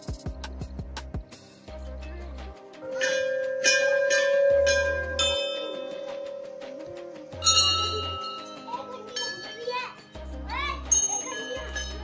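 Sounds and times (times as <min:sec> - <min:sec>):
temple bell ringing: 0:02.8 - 0:12.0.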